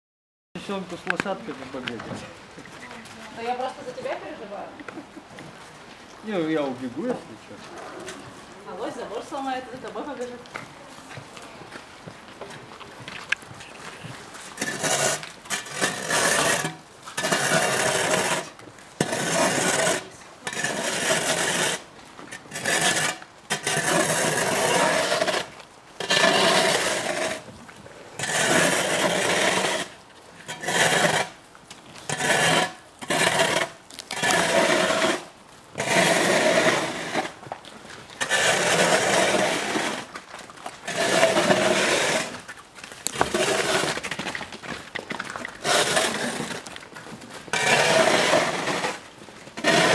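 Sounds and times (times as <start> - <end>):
moose chewing branches: 0.6 - 49.9.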